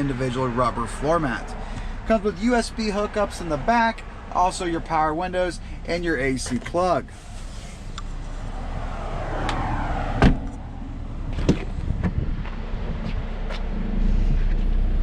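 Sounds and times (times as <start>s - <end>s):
car door shutting: 9.4s - 10.6s, 11.3s - 12.6s.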